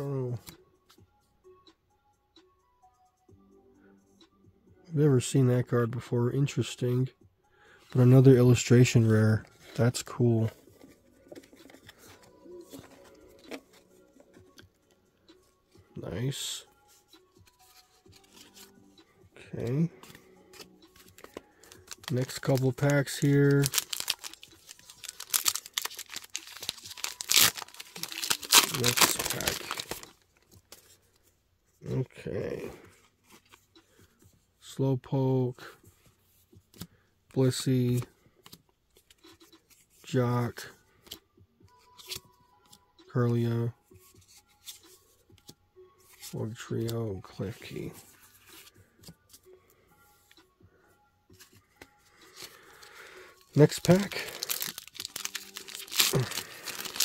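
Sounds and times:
trading cards rustling: 0:07.9 - 0:14.9, 0:16.3 - 0:18.8, 0:19.6 - 0:31.3, 0:46.0 - 0:49.5, 0:51.4 - 0:57.0
wrappers ripping and crinkling: 0:21.7 - 0:30.2, 0:53.5 - 0:57.0.

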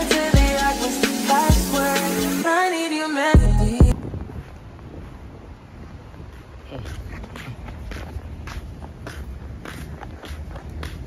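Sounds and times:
wind buffeting microphone: 0:03.9 - 0:11.0.

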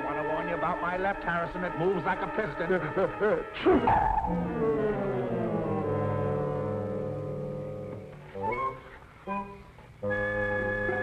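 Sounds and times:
orchestral film score: 0:00.0 - 0:11.0.

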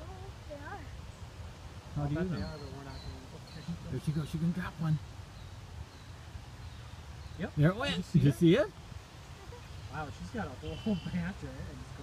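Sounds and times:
steady low outdoor rumble: 0:00.0 - 0:12.0.

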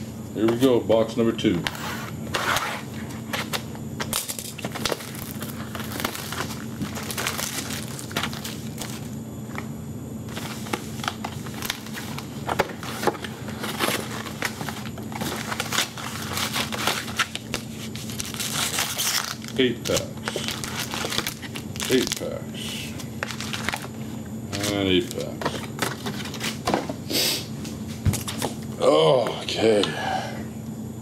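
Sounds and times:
steady low hum: 0:00.0 - 0:31.0
foil card packs rustling: 0:01.6 - 0:27.0
shrink wrap crinkling: 0:03.4 - 0:09.7, 0:10.3 - 0:26.6.

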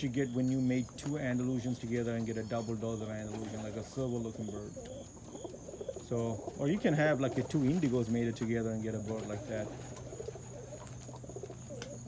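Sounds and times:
pigeons cooing softly: 0:00.0 - 0:12.0.

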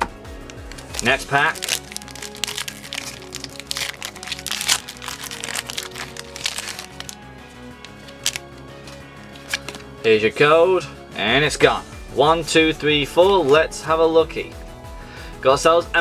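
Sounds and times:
background music: 0:00.0 - 0:16.0
foil wrapper tearing and crinkling: 0:00.4 - 0:10.0.

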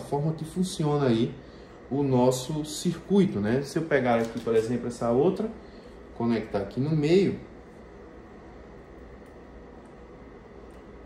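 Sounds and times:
room tone hiss and hum: 0:00.0 - 0:11.0.

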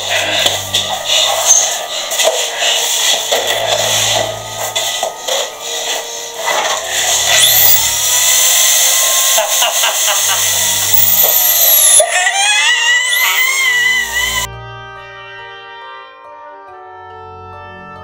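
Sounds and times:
electric drill motor whine: 0:03.6 - 0:14.5.

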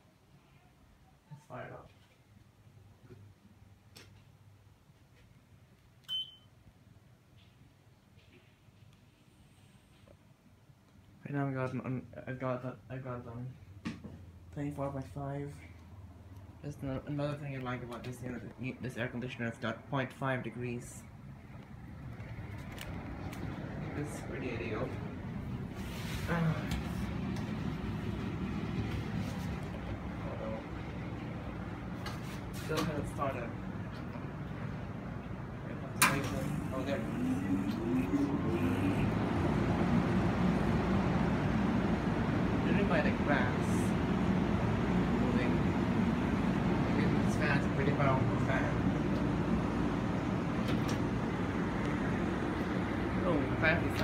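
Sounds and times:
short electronic beep: 0:06.1 - 0:06.5
faint low hum: 0:14.4 - 0:54.0.

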